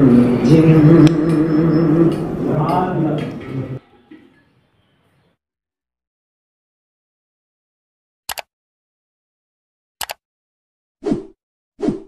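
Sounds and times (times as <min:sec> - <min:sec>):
mouse clicks: 0:10.0 - 0:10.2.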